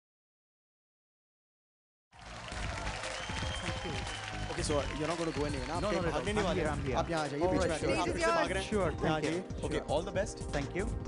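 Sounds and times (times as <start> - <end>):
audience applause: 2.2 - 7.8
background music: 2.2 - 11.0.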